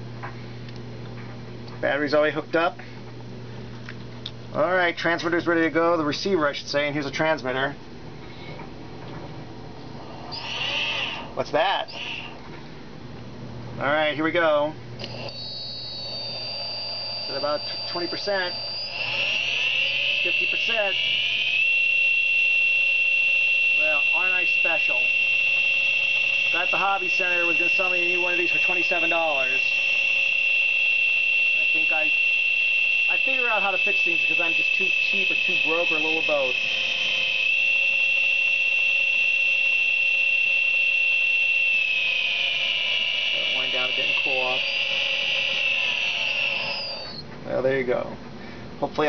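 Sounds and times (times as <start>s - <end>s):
electric motor whine: 9.9s - 12.4s, 15.0s - 47.2s.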